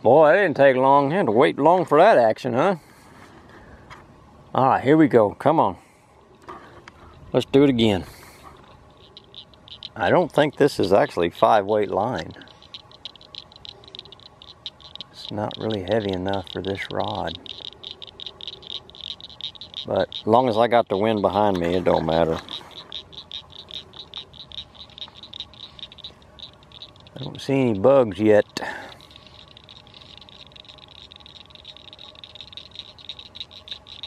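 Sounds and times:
frogs chirping: 6.2s - 34.0s
man speaking: 15.2s - 17.4s, 19.9s - 22.5s, 27.1s - 28.9s.

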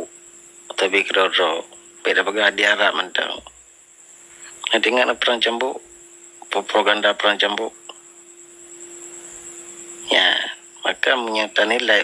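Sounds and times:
background hiss: 0.0s - 12.0s
faint high-pitched whine: 0.0s - 12.0s.

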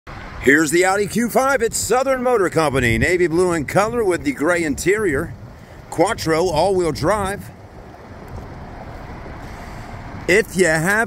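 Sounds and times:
distant road traffic hum: 0.1s - 11.0s.

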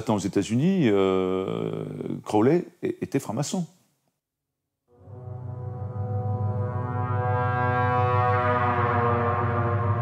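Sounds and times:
ominous drone music: 4.9s - 10.0s.

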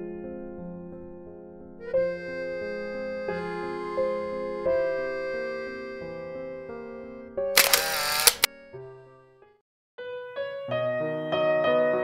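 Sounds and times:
soft piano music: 0.0s - 7.5s, 10.0s - 12.0s
camera shutter clicks: 7.6s - 8.5s.

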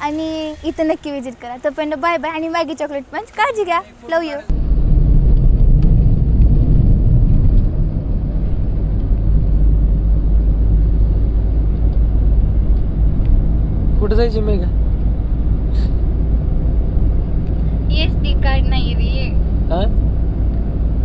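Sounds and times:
road vehicle rumble: 0.0s - 21.0s.

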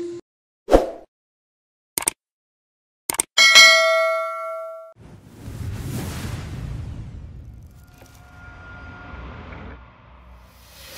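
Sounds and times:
bright bell ding: 3.4s - 5.0s.

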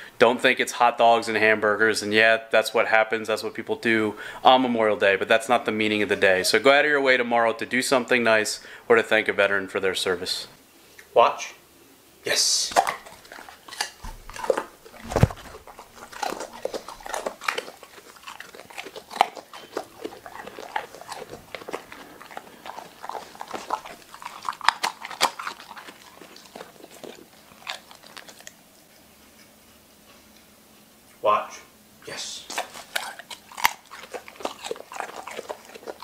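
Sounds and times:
dog crunching a treat: 12.5s - 29.5s, 32.4s - 36.0s.

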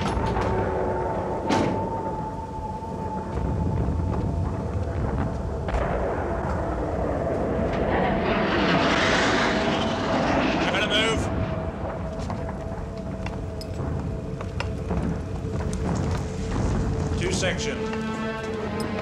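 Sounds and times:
rushing noise: 3.1s - 14.3s.

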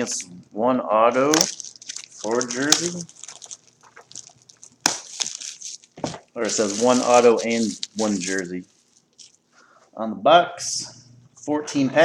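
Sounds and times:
crinkly wrapping rustling: 1.2s - 9.6s.

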